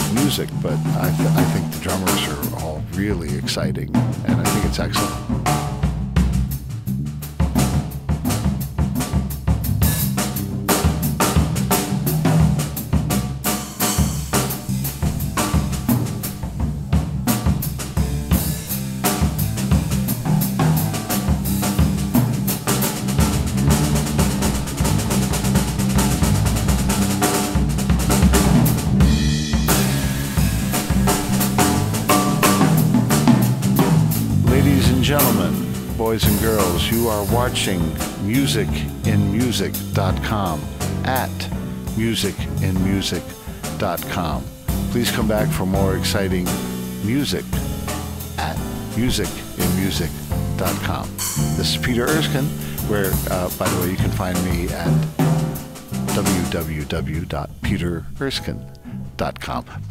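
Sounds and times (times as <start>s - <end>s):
busy jazz drum kit: 0.0s - 59.9s
electric bass: 0.0s - 59.9s
grand piano: 9.5s - 59.9s.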